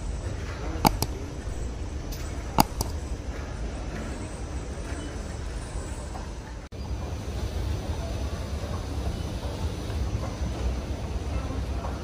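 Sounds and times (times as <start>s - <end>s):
airport terminal rumble: 0.0s - 12.0s
mouse double clicks: 0.8s - 1.8s, 2.4s - 3.1s.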